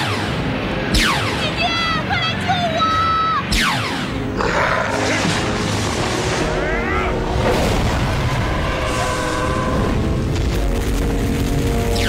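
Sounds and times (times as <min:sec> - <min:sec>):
rush of noise: 0:00.0 - 0:12.0.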